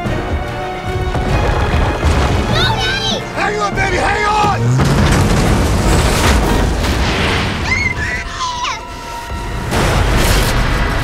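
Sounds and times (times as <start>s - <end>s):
loud rumble with booms: 0.9s - 7.9s.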